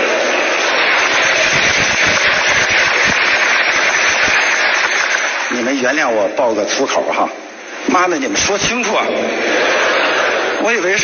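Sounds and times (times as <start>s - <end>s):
audience applauding: 0.0s - 6.0s
audience laughter: 9.0s - 11.0s.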